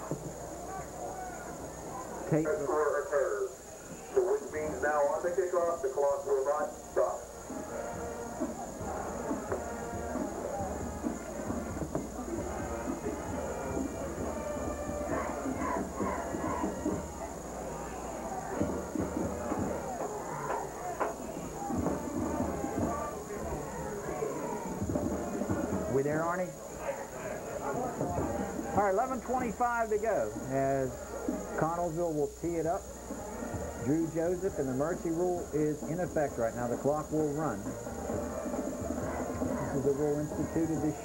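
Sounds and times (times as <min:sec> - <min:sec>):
crowd shouting: 0:00.0 - 0:05.0, 0:07.8 - 0:32.0, 0:37.2 - 0:41.0
music: 0:00.0 - 0:41.0
stadium crowd cheering: 0:00.0 - 0:41.0.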